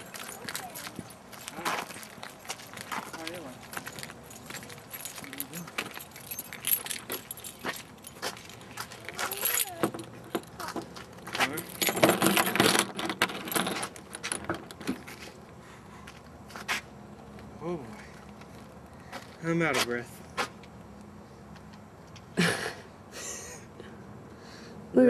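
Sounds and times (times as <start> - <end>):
keys jingling: 0.0 - 15.2.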